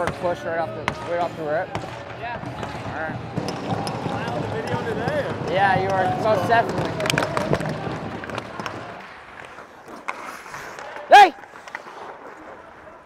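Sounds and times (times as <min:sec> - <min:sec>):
arena noise: 0:00.0 - 0:13.0
hockey sticks clacking: 0:01.2 - 0:13.0
skates scraping on ice: 0:03.4 - 0:13.0.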